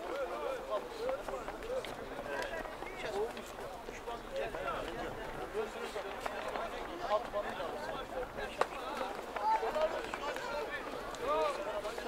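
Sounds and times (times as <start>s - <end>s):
crowd of men talking: 0.0s - 12.0s.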